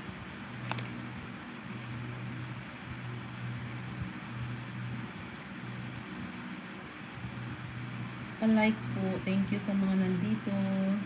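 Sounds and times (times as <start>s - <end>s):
low pulsing hum: 0.0s - 11.0s.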